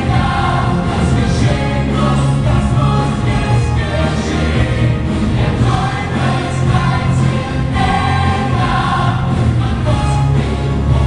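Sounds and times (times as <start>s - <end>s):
ensemble choir singing: 0.0s - 11.0s
male soloists singing: 0.0s - 11.0s.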